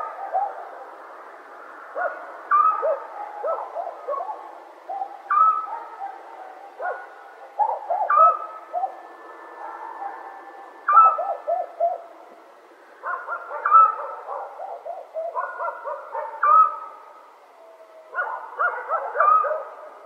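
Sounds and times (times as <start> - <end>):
owls hooting: 2.0 - 12.2, 13.1 - 18.2.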